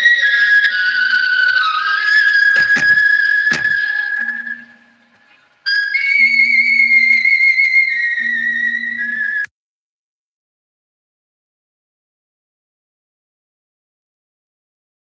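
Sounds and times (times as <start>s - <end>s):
clicks: 2.5s - 4.0s
high-pitched whistling tone: 5.7s - 9.5s.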